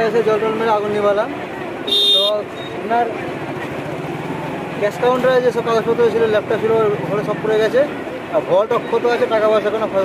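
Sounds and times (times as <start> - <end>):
street noise: 0.0 - 10.0
vehicle engine: 0.0 - 10.0
short high-pitched beep: 1.9 - 2.8
man speaking: 4.8 - 10.0.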